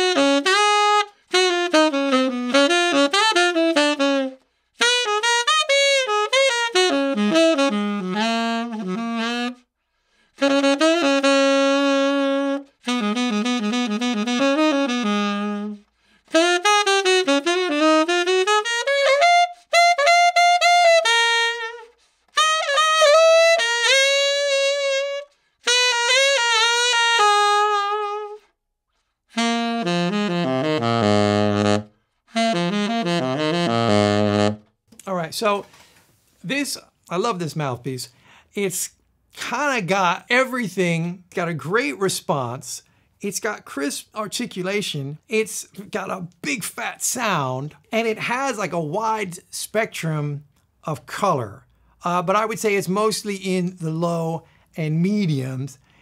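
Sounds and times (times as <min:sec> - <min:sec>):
tenor saxophone playing jazz: 0:00.0 - 0:34.8.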